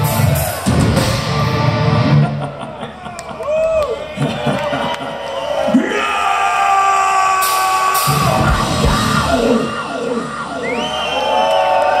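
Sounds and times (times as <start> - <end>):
crowd yelling and whooping: 0.0 - 12.0.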